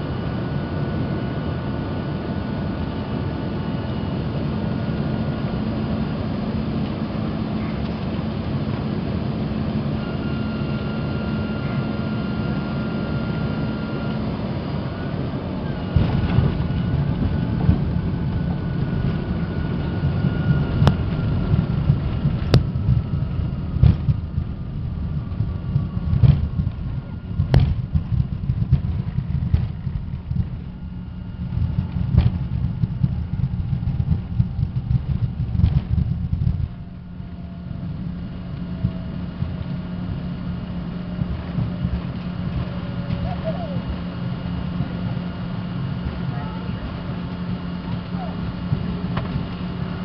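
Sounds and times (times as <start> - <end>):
faint jet engine whine: 0.0 - 50.0
heavy low rumble with bumps: 0.0 - 50.0.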